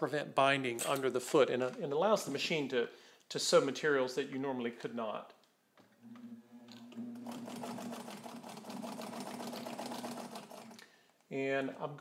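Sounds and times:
sewing machine motor hum: 6.0 - 10.8
sewing needle rapid ticking: 7.2 - 10.8.

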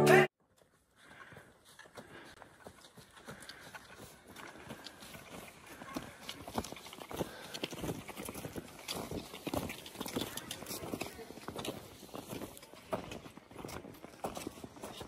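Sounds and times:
footsteps crunching on snow: 0.6 - 15.0
trekking poles clicking: 0.6 - 15.0.

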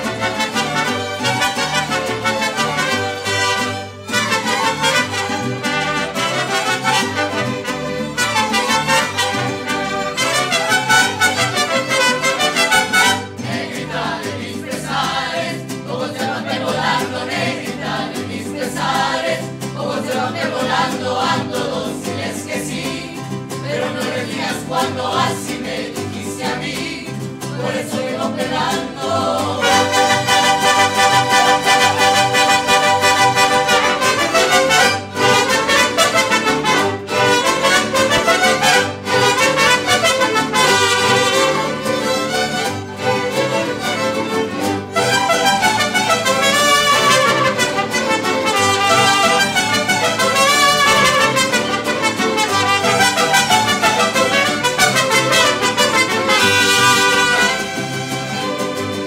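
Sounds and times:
mariachi band playing: 0.0 - 59.0.

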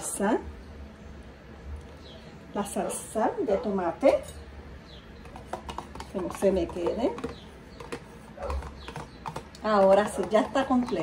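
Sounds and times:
metal spoon scraping carton: 5.3 - 11.0.

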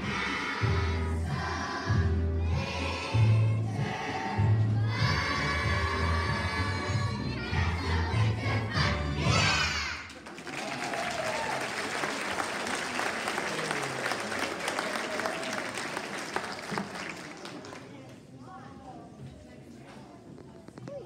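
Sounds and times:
bass-heavy accompaniment: 0.0 - 9.8
children's choir singing: 0.0 - 10.0
audience applause: 10.1 - 18.0.

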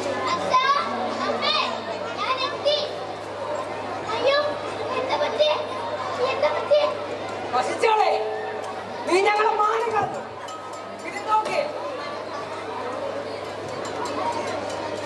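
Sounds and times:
young voices talking and calling: 0.0 - 15.0.

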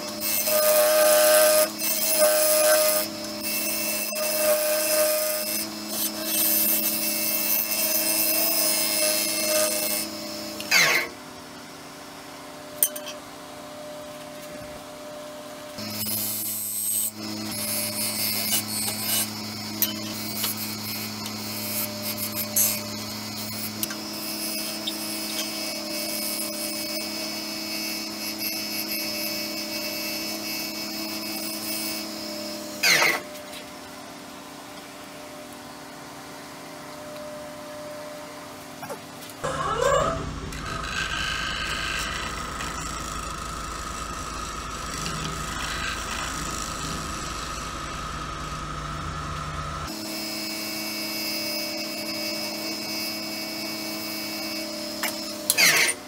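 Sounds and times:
tool scraping wood on lathe: 39.4 - 48.1
lathe humming: 39.4 - 50.7.

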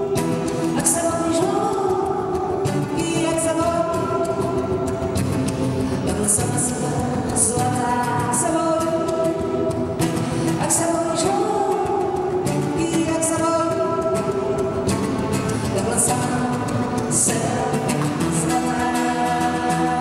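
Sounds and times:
strummed acoustic guitar: 0.0 - 20.0
woman singing: 0.0 - 20.0.

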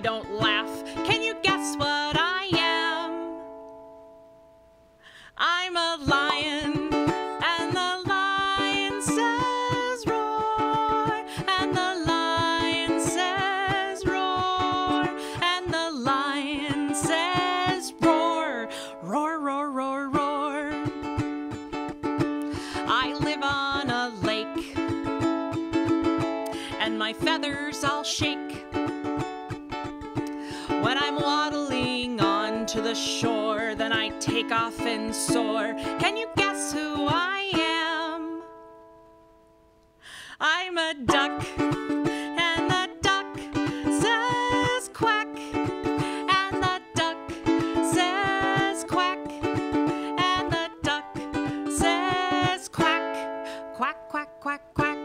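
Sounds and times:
woman singing: 0.0 - 3.7, 5.2 - 38.6, 40.3 - 55.0
ukulele strumming: 0.0 - 39.8, 40.4 - 55.0.

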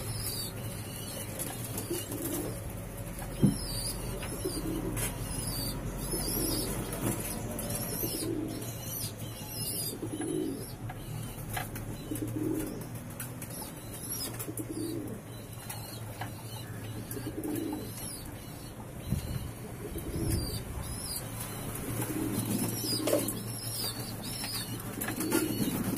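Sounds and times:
pigeons cooing: 0.0 - 25.9.

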